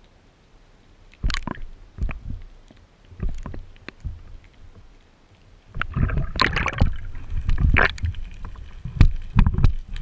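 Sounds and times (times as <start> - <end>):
muffled underwater rumble: 1.2 - 5.0, 5.6 - 10.0.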